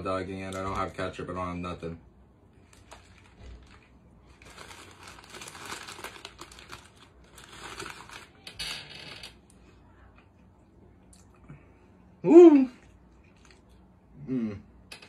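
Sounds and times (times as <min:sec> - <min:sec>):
paper bag crinkling: 0:02.6 - 0:08.5.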